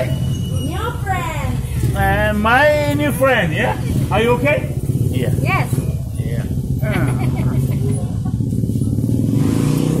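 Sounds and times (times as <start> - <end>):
voices: 0.0 - 9.1
engine running: 0.0 - 10.0.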